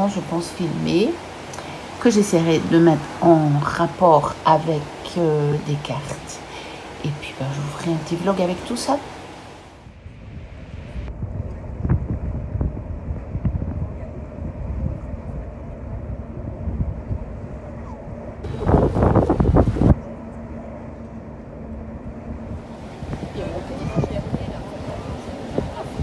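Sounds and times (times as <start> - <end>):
low rumble of water: 0.0 - 26.0
wind buffeting microphone: 0.0 - 26.0.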